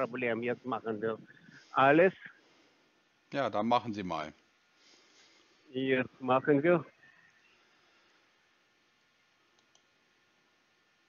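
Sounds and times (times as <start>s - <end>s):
faint line hiss: 0.0s - 11.0s
faint clicks: 9.4s - 10.0s.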